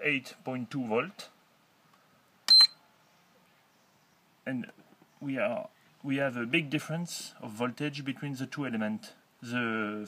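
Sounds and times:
short high-pitched beep: 0:02.5 - 0:02.8.

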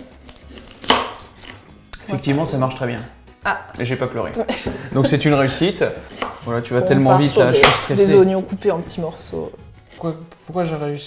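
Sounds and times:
knife tapping on chopping board: 0:07.6 - 0:07.9
knife knocking on board: 0:07.6 - 0:08.0.

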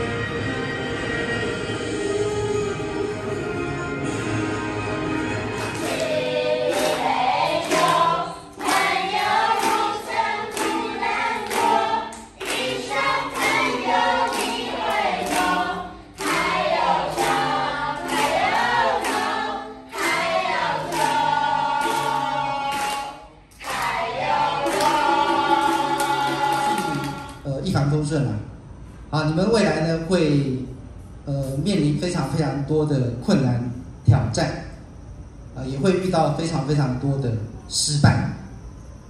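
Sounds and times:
ukulele: 0:02.6 - 0:23.2, 0:23.9 - 0:27.4
group singing: 0:05.4 - 0:27.4.

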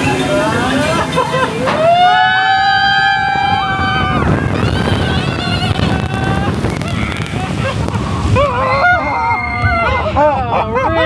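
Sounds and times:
rush of water and air: 0:00.0 - 0:11.0
riders screaming: 0:01.6 - 0:11.0.

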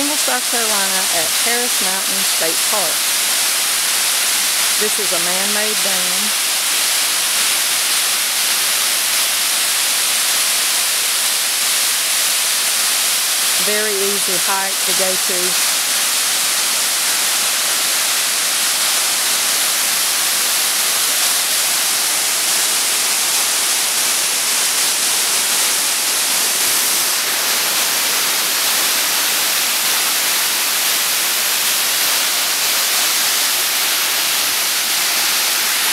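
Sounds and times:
water rushing down dam spillway: 0:00.0 - 0:35.9.

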